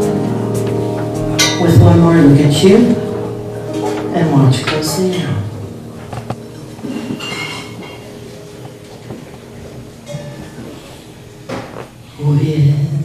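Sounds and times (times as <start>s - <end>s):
jazz ballad held chords: 0.0s - 12.2s
sustained melody note: 0.0s - 12.2s.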